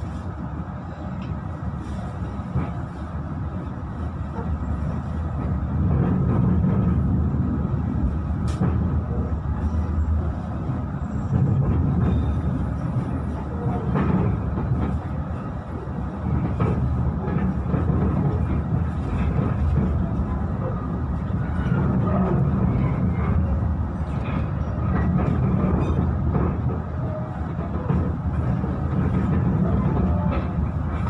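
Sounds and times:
train carriage rumbling on rails: 0.0 - 31.0.

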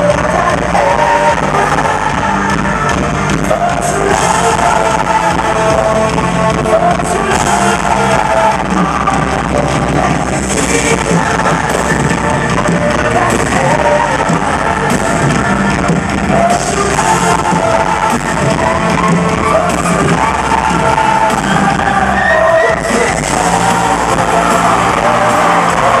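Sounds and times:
live pop band with vocals: 0.0 - 26.0.

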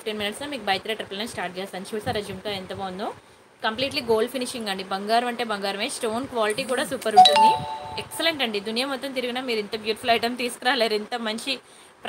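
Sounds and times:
woman talking: 0.0 - 7.4
bell-like chime: 7.2 - 8.3.

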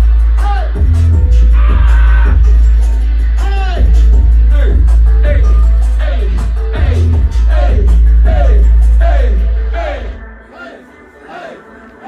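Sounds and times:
heavy bass line: 0.0 - 10.3
hip hop music through loudspeakers: 0.0 - 12.0.

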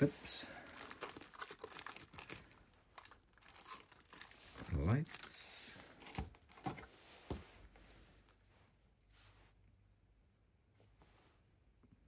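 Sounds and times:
plastic film crinkling: 0.5 - 6.9.

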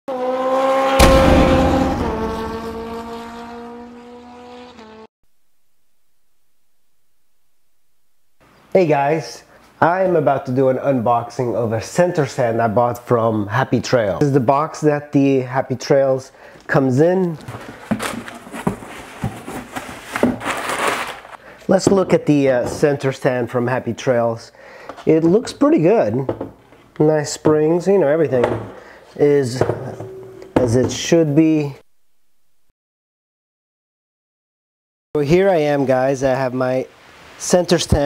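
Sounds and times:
sharp hit: 0.9 - 3.8
sustained pitched tone: 0.9 - 4.0
sharp knock: 1.0 - 3.4
packing paper rustling: 17.3 - 21.4.

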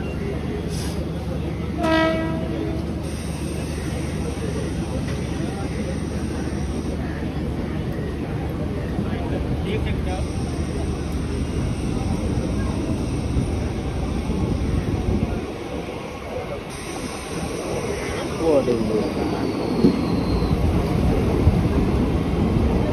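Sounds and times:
train wheels rumbling on track: 0.0 - 22.9
train horn: 1.8 - 2.8.

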